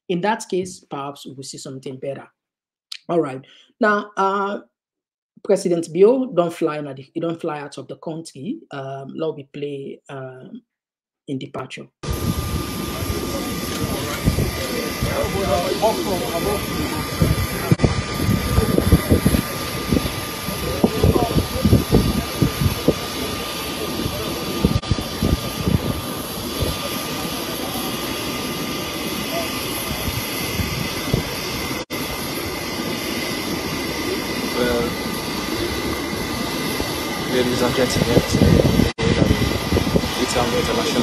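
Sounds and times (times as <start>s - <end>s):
high whine: 12.0s - 41.0s
jet engine noise: 12.0s - 41.0s
people's voices: 12.8s - 25.6s, 34.0s - 39.3s, 40.1s - 41.0s.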